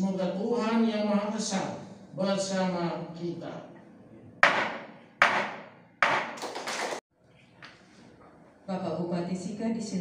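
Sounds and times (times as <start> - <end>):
wooden gavel knocking on desk: 4.4 - 6.5.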